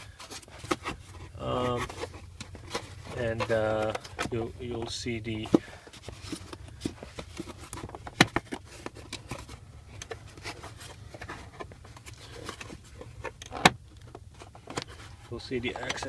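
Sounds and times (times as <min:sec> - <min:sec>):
styrofoam scraping and creaking: 0:00.0 - 0:16.0.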